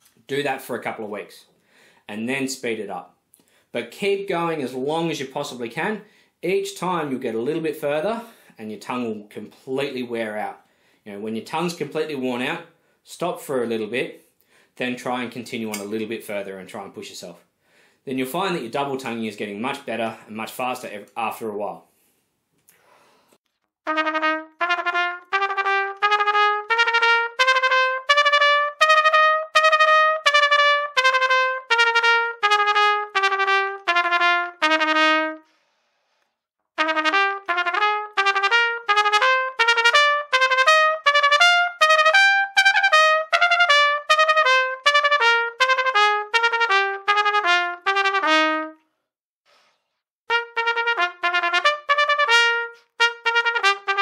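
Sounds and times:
trumpet fast tongued notes: 23.9 - 35.5, 36.8 - 48.8, 50.3 - 54.0.

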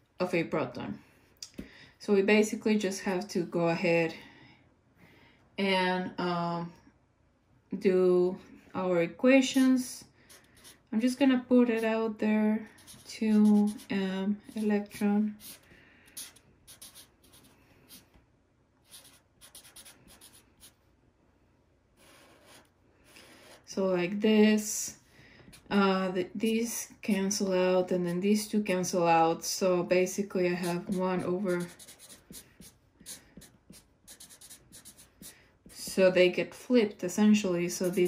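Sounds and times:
marker pen writing on paper: 12.7 - 13.9, 14.5 - 18.0, 18.8 - 20.8, 22.0 - 23.7, 30.6 - 36.0, 37.7 - 38.0.

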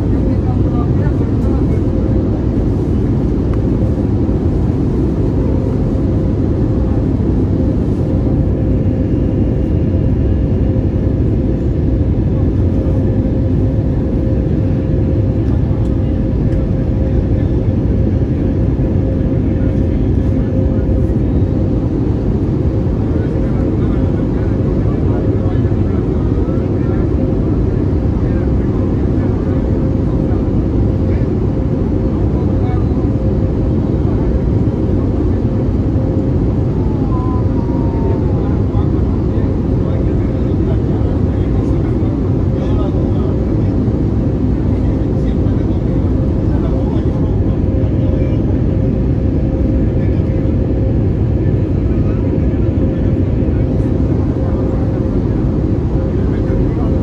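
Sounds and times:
airplane cabin engine rush: 0.0 - 57.0.

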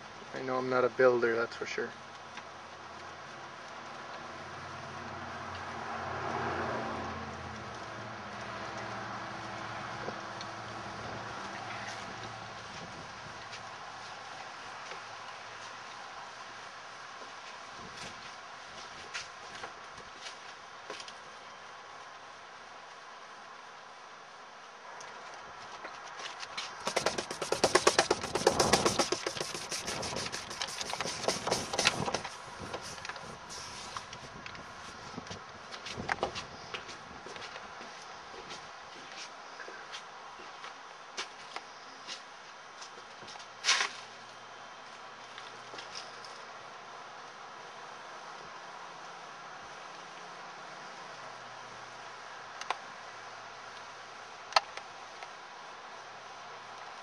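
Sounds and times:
rapid rattling: 26.8 - 33.3
wind turbine whirring: 26.8 - 37.3.

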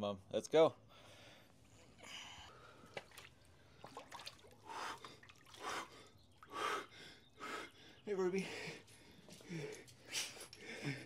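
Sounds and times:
water splashing: 2.6 - 6.6.

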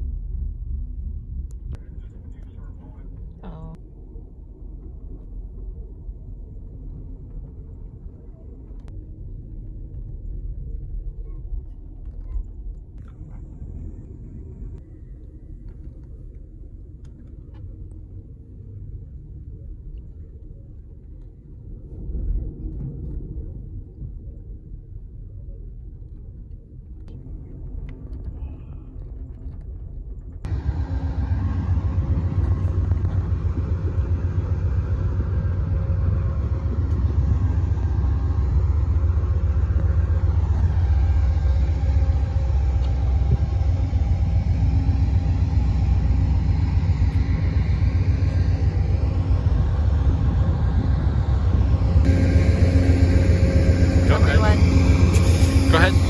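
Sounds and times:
outdoor noise: 0.0 - 56.0
train rumble from inside: 0.0 - 56.0.

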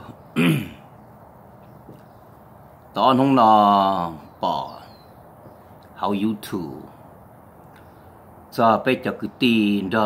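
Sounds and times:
man clearing his throat: 0.3 - 0.9.

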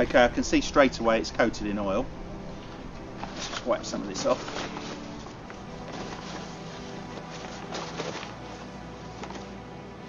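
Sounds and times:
steady low tone: 0.0 - 10.0
newspaper rustling and rubbing: 3.2 - 9.6.

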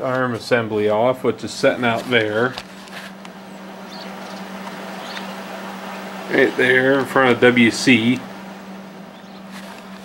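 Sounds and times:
background hiss: 0.0 - 10.0
steady low hum: 0.0 - 10.0
faint ticks: 3.1 - 5.4.

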